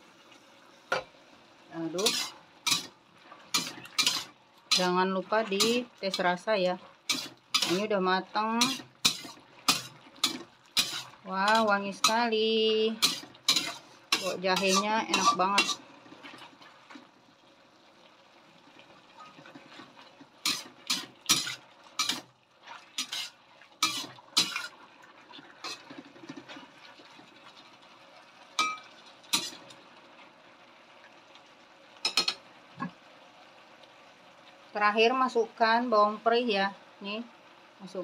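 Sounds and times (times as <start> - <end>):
metal spatula scraping wok: 1.8 - 16.5, 19.2 - 22.3, 23.0 - 24.8, 25.6 - 26.6, 28.6 - 29.6.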